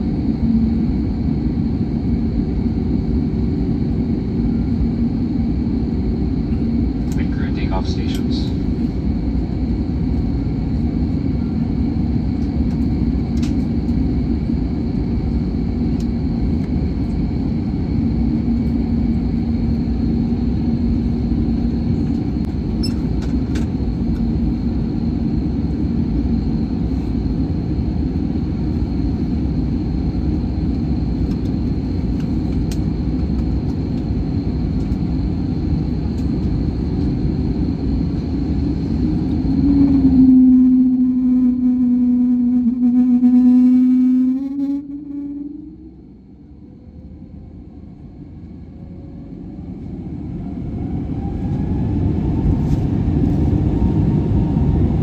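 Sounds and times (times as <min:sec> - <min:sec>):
jet engine rumble in cabin: 0:00.0 - 0:55.0.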